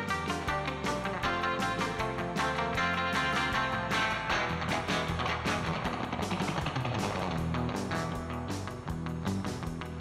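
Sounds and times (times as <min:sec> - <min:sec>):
guitar and drums music: 0:00.0 - 0:10.0.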